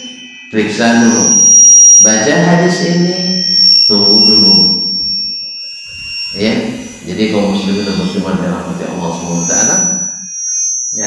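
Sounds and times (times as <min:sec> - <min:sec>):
steady high-pitched whine: 0:00.0 - 0:11.0
man speaking over a microphone: 0:00.6 - 0:01.4, 0:02.0 - 0:04.8, 0:06.4 - 0:09.9.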